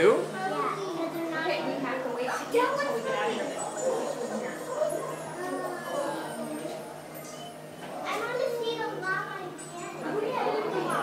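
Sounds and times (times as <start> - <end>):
children talking and calling out: 0.2 - 7.2, 7.9 - 11.0.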